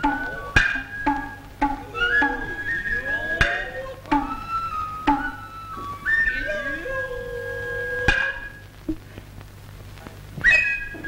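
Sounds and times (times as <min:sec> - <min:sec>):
sharp drum stroke: 0:00.0 - 0:06.0
bamboo flute high note: 0:00.0 - 0:08.7, 0:10.4 - 0:11.0
long vocal call: 0:00.0 - 0:09.4.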